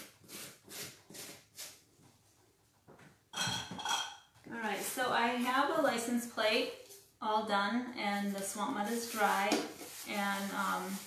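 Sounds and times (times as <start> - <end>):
glass clinking: 3.4 - 4.3.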